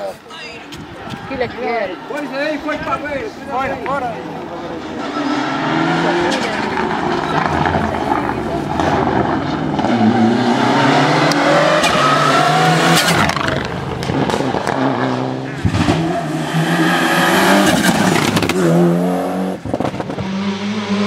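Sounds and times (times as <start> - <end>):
rally car engines revving: 2.7 - 21.0.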